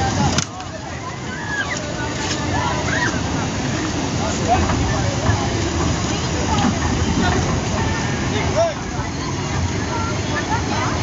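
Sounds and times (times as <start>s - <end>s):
faint voices talking: 0.0s - 11.0s.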